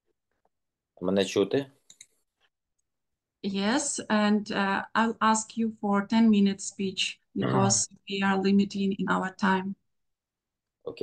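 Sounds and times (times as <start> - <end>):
man speaking over video call: 1.0 - 1.9, 7.4 - 7.8.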